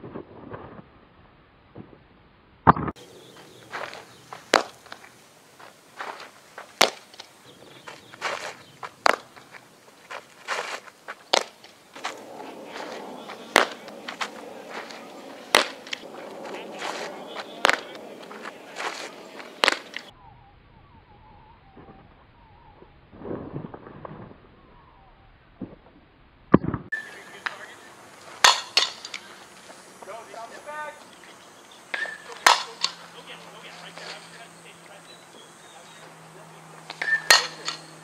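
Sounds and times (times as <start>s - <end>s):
ball smacking gloves and bat: 2.7s - 20.1s, 26.6s - 34.9s, 35.8s - 38.0s.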